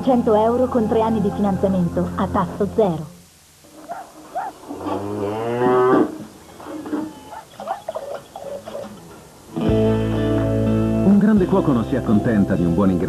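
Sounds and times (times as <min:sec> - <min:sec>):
cow mooing: 0:03.8 - 0:09.2.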